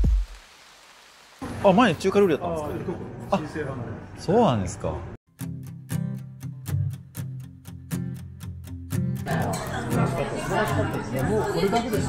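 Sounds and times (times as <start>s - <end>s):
indistinct conversational chatter: 9.3s - 12.0s.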